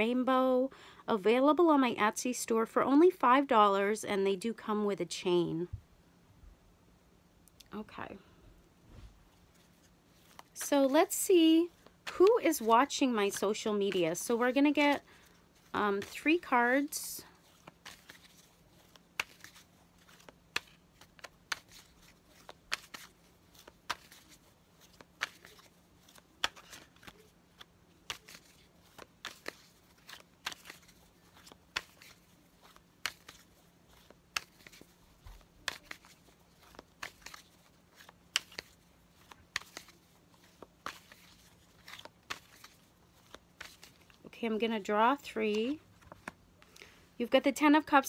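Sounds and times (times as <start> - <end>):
cards being shuffled: 9.3 - 44.3, 45.0 - 46.9.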